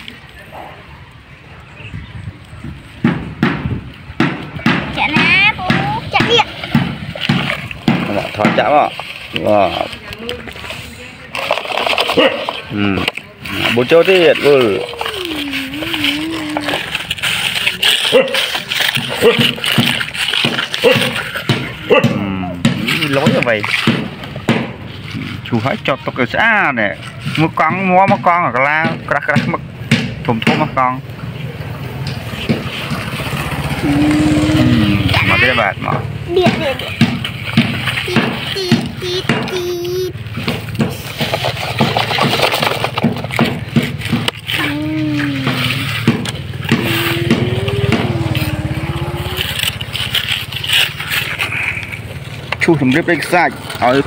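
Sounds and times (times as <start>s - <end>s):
toy loader scraping sand: 5.0s - 22.0s, 22.7s - 28.8s, 31.9s - 54.0s
children chattering: 9.8s - 21.9s, 33.4s - 41.2s, 44.4s - 52.1s.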